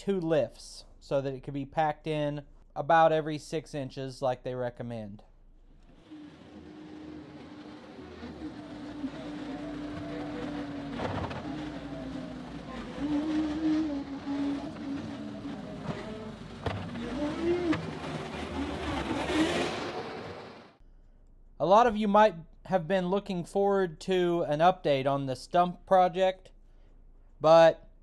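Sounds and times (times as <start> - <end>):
diesel engine working: 5.9 - 20.8.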